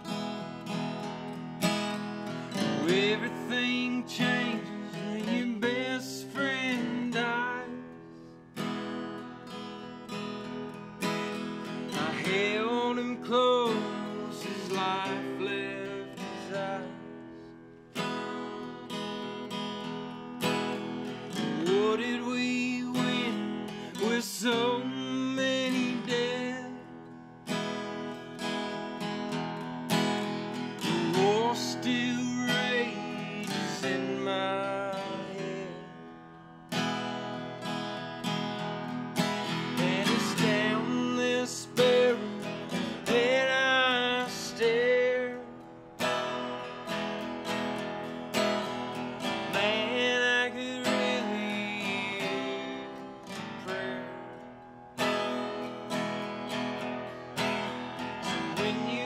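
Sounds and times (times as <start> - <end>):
acoustic guitar strumming: 0.0 - 59.0
man singing: 2.4 - 8.2, 11.7 - 17.2, 21.3 - 27.0, 30.5 - 36.1, 39.4 - 46.2, 49.2 - 54.2, 57.4 - 59.0.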